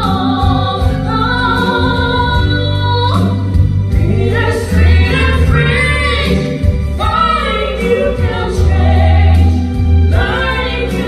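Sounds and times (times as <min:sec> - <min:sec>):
woman and man singing duet: 0:00.0 - 0:11.0.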